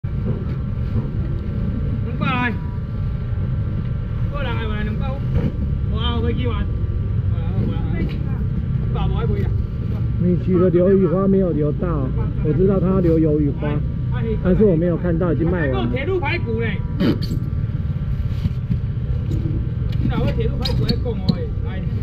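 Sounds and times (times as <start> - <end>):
low rumble: 0.0 - 22.0.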